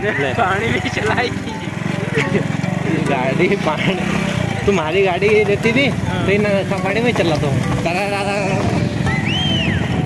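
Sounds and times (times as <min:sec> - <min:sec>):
small engine running: 0:00.0 - 0:10.0
voices: 0:00.0 - 0:10.0.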